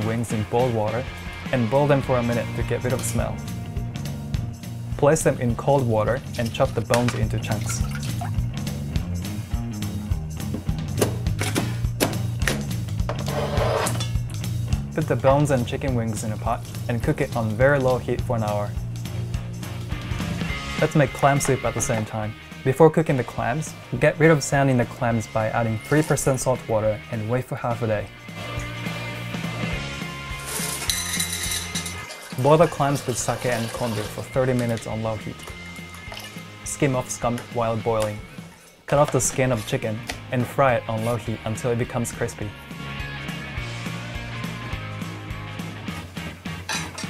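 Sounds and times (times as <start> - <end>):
background music: 0.0 - 47.0
clams clinking in metal strainer: 30.6 - 32.4.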